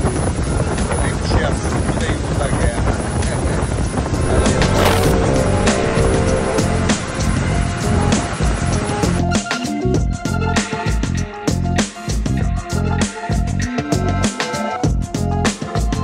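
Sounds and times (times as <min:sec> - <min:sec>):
wind noise: 0:00.0 - 0:09.2
boat engine: 0:04.0 - 0:09.3
background music: 0:04.2 - 0:10.6.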